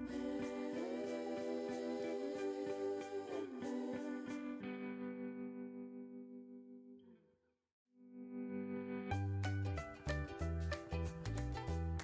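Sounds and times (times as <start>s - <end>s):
plucked instrumental music: 8.2s - 12.0s.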